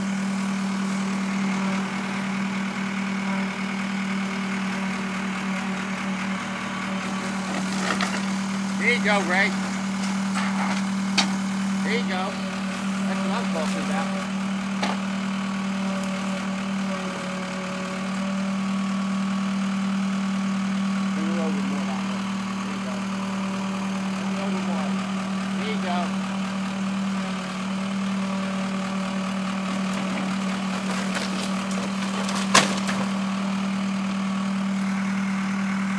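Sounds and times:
backhoe engine running: 0.0s - 35.9s
wood cracking: 7.0s - 11.5s, 29.4s - 33.7s.

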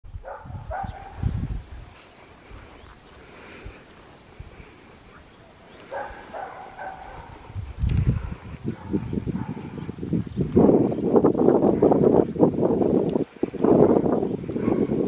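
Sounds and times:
low rumble on microphone: 0.0s - 3.7s, 4.3s - 15.0s.

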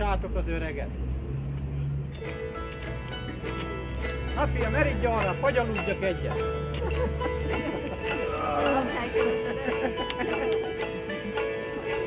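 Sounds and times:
plucked-string folk music: 2.0s - 12.0s.

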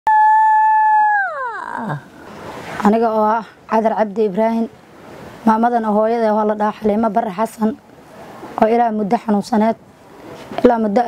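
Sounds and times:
high tone sliding down in pitch: 0.1s - 2.0s.

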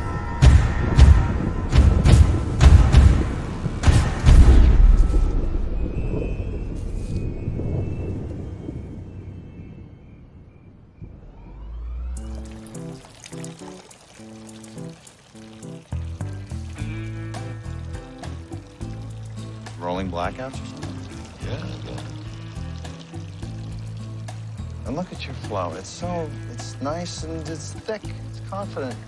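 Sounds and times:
music: 0.0s - 7.2s, 12.2s - 29.0s
low rumble: 0.0s - 13.1s
urine splashing into water: 12.2s - 29.0s.

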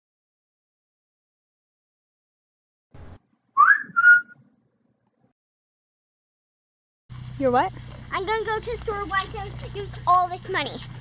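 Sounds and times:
loud two-note whistle: 3.6s - 4.3s.

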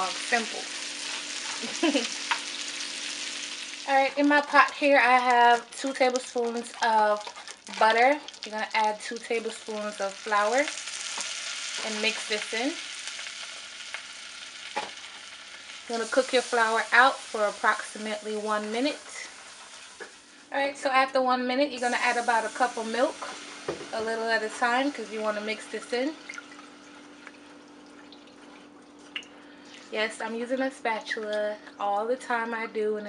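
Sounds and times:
butter and flour sizzling in saucepan: 0.0s - 21.0s, 21.7s - 27.8s.

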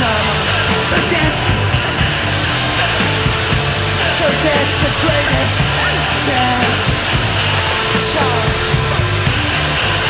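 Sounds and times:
loud guitar-driven rock: 0.0s - 10.0s.

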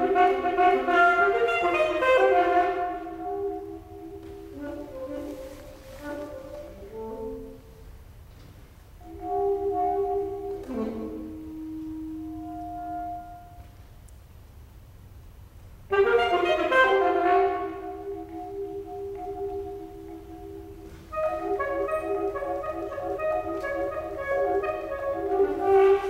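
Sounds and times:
alto saxophone notes: 0.0s - 14.1s, 15.9s - 26.0s.

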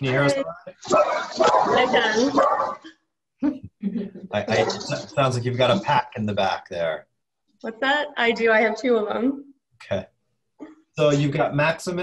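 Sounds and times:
dogs barking: 0.9s - 2.9s, 4.5s - 5.3s.

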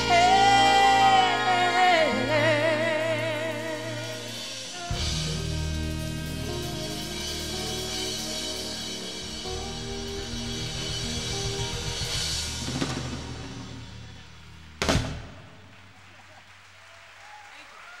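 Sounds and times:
jazz-pop band playing: 0.0s - 15.5s
audience applause: 15.6s - 18.0s.

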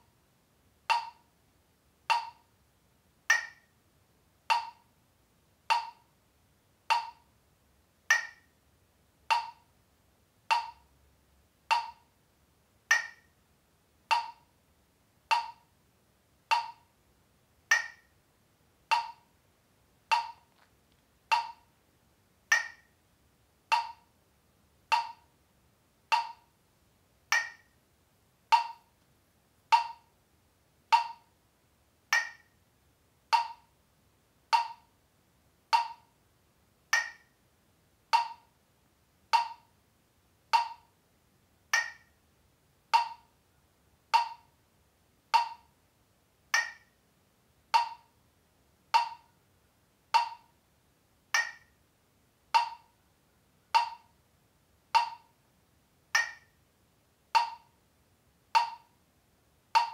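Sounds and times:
metronome clicking: 0.9s - 1.3s, 2.1s - 2.5s, 3.3s - 3.7s, 4.5s - 4.9s, 5.7s - 6.1s, 6.9s - 7.3s, 8.1s - 8.5s, 9.3s - 9.7s, 10.5s - 10.9s, 11.7s - 12.1s, 12.9s - 13.4s, 14.1s - 14.5s, 15.3s - 15.7s, 16.5s - 16.9s, 17.7s - 18.2s, 18.9s - 19.3s, 20.1s - 20.7s, 21.3s - 21.7s, 22.5s - 23.0s, 23.7s - 24.1s, 24.9s - 25.3s, 26.1s - 26.5s, 27.3s - 27.8s, 28.5s - 29.0s, 29.7s - 30.2s, 30.9s - 31.3s, 32.1s - 32.6s, 33.3s - 33.7s, 34.5s - 34.9s, 35.7s - 36.1s, 36.9s - 37.4s, 38.1s - 38.5s, 39.3s - 39.7s, 40.5s - 40.9s, 41.7s - 42.2s, 42.9s - 43.3s, 44.2s - 44.6s, 45.3s - 45.7s, 46.5s - 47.0s, 47.7s - 48.1s, 48.9s - 49.3s, 50.2s - 50.5s, 51.3s - 51.8s, 52.5s - 53.0s, 53.7s - 54.2s, 54.9s - 55.4s, 56.1s - 56.6s, 57.3s - 57.8s, 58.5s - 59.0s.

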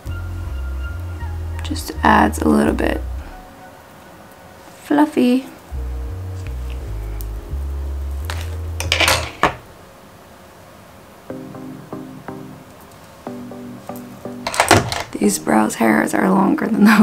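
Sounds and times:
low bass notes: 0.0s - 3.4s, 5.7s - 8.9s.

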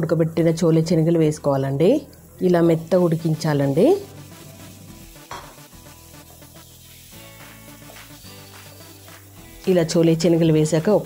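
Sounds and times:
quiet background music: 0.0s - 11.0s
food sizzling in a pan: 0.4s - 11.0s.

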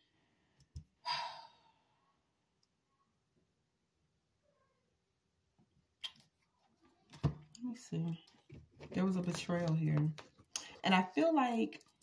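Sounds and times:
person sighing: 1.0s - 2.0s.

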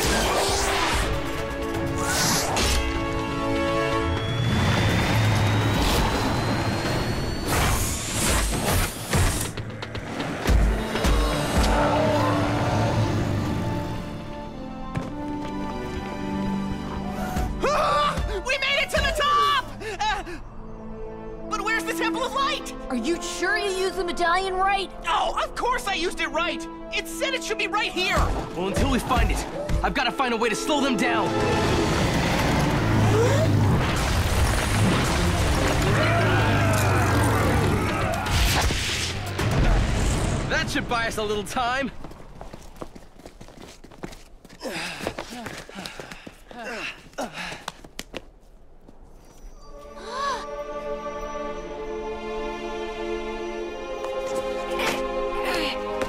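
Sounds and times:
dramatic music: 0.0s - 41.4s
vehicle engine effects: 3.6s - 14.2s, 31.2s - 38.2s
rising whine: 4.0s - 8.4s
earth and rock crumbling: 31.3s - 40.7s.

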